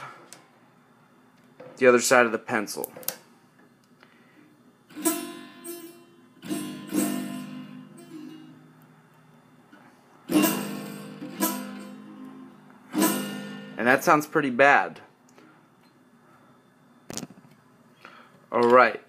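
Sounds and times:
acoustic guitar strummed: 4.9s - 8.7s, 10.3s - 14.1s.

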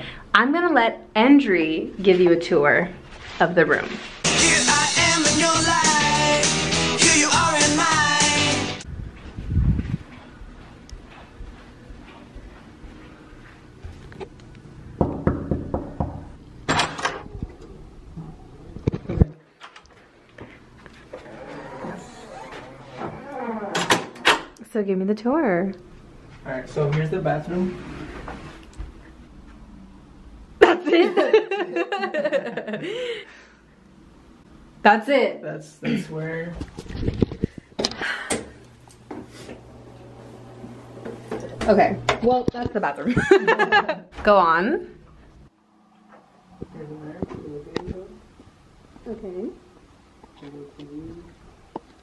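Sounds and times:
knuckles knocking on door: 15.0s - 16.3s.

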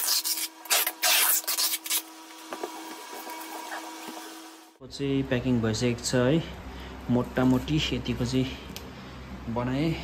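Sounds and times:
packing tape ripping off roll: 0.0s - 2.1s
faint steady hum: 0.0s - 10.0s.

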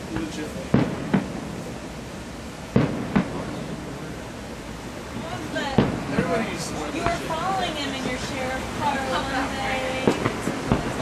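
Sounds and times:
fireworks bangs: 0.0s - 11.0s.

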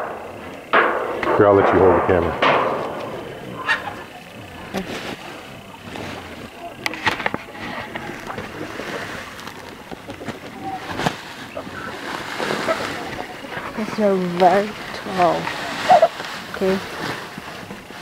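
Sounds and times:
plastic sack rustling: 4.0s - 18.0s.

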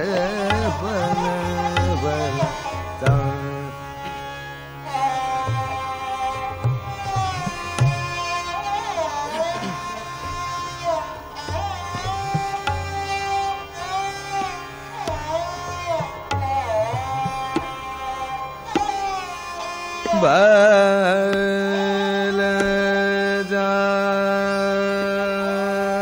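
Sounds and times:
tabla strokes: 0.0s - 23.5s
harmonium: 0.0s - 26.0s
man singing ornamented melody: 0.0s - 26.0s
tanpura drone: 0.0s - 26.0s.

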